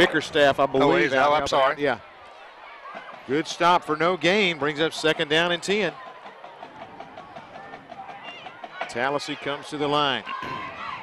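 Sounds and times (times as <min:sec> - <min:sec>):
distant voices: 0:00.0 - 0:11.0
faint stadium crowd murmur: 0:00.0 - 0:11.0.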